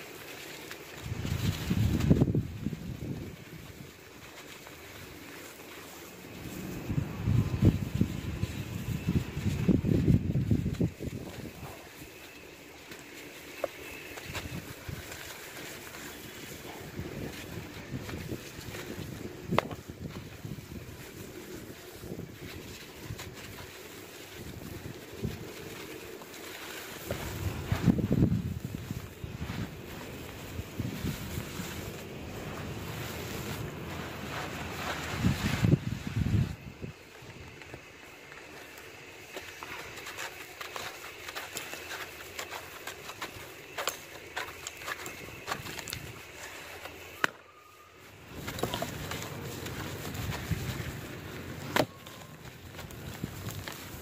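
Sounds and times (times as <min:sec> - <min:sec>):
charcoal crunching under hands: 0:00.0 - 0:54.0
grit pattering on concrete floor: 0:00.0 - 0:54.0.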